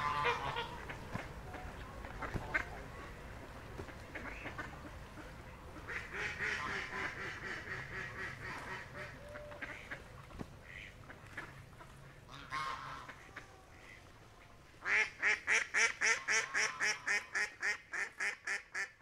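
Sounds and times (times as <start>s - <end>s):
ducks quacking: 0.0s - 19.0s.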